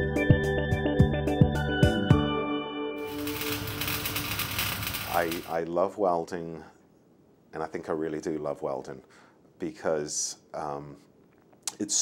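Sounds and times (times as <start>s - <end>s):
sparks crackling and sizzling: 3.0s - 5.7s.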